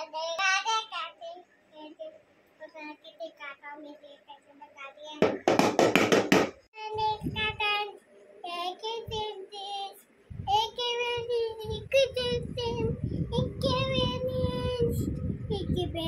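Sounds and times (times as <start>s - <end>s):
toddler singing: 6.8s - 16.0s
low bumping and rumbling: 10.3s - 16.0s.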